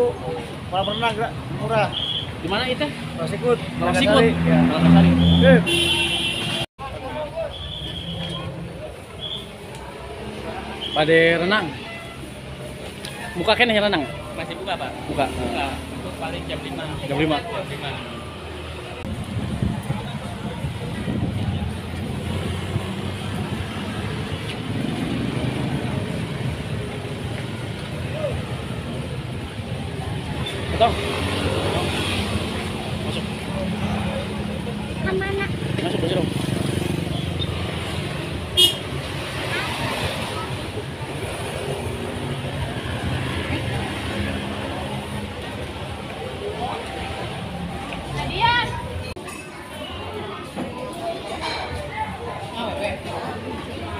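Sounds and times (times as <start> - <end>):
vehicle engines rumbling: 0.0 - 53.9
voices: 0.0 - 53.9.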